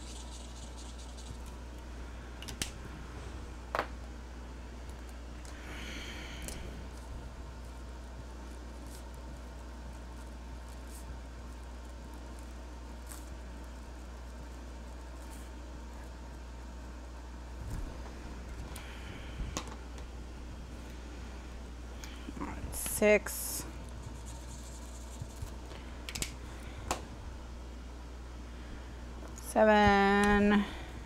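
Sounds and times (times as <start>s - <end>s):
low electrical hum: 0.0s - 31.0s
marker scratching on paper: 24.0s - 25.5s.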